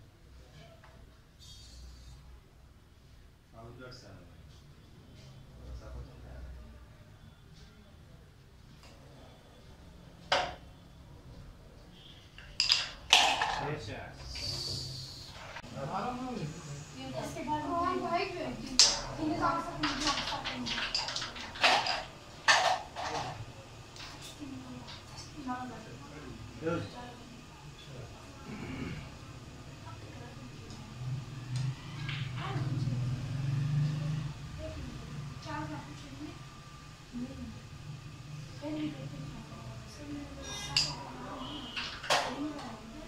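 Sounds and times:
carrom coins clacking: 12.4 - 13.7, 19.7 - 23.3.

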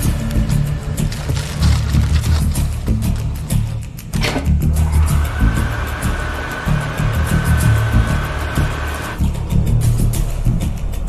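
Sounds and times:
music with deep pulsing beat: 0.0 - 11.0
hand dryer blowing: 4.8 - 9.2.

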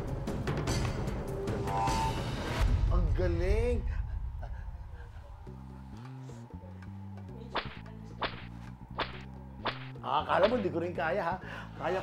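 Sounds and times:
low music bed: 0.0 - 12.0.

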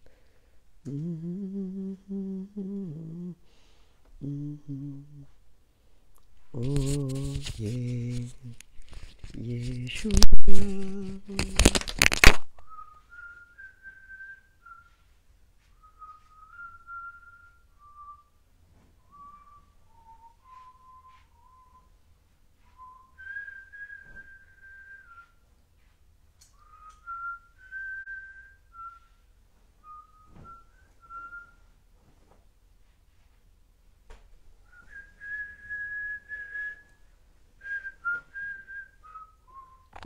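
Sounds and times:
man whistling a slow tune: 12.6 - 31.8, 34.7 - 40.0.

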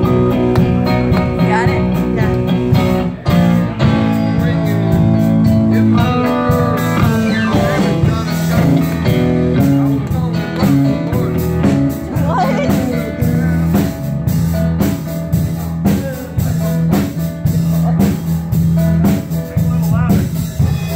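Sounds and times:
electric guitar: 0.0 - 20.9
live blues band: 0.0 - 20.9
steady drum beat: 0.0 - 20.9.

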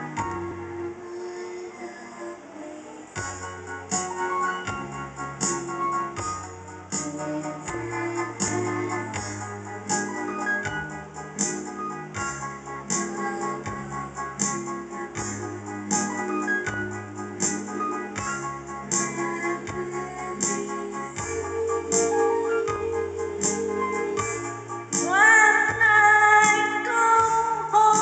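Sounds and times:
bass line: 0.0 - 1.0, 3.2 - 27.8
keyboard and organ chords: 0.0 - 1.2, 3.2 - 28.0.

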